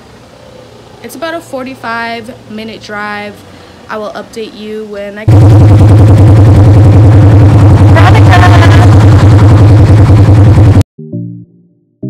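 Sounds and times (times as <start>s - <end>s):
loud engine running: 5.3s - 10.8s
person calling out: 8.0s - 9.0s.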